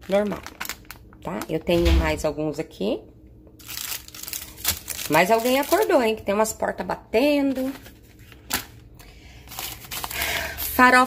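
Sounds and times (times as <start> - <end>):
plastic packaging rustling: 0.0 - 1.6, 3.6 - 6.2, 7.4 - 11.0.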